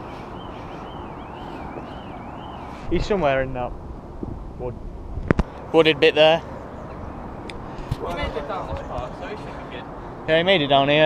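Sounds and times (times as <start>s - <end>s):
wind on microphone: 2.6s - 5.7s.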